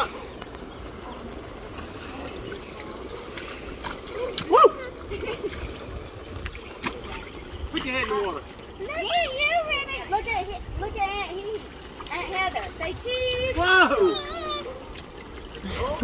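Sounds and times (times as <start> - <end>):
feet splashing in water: 0.0 - 10.4, 11.0 - 16.0
water spraying and pattering: 0.0 - 16.0
high voice cry: 13.6 - 14.8.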